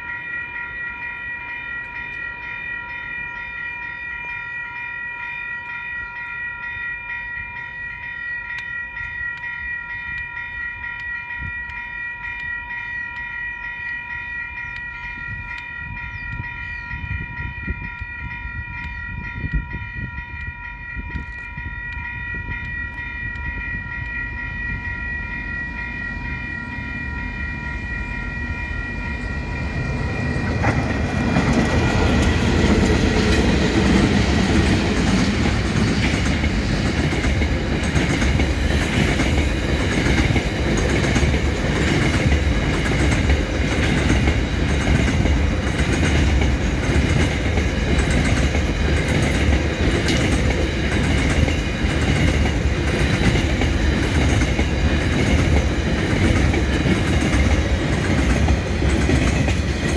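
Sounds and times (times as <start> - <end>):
diesel locomotives passing: 0.0 - 59.9.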